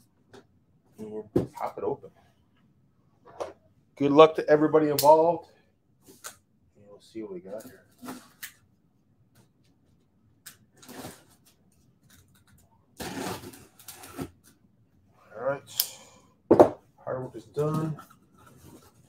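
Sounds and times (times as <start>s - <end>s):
cardboard tearing and rubbing: 13.0s - 14.4s.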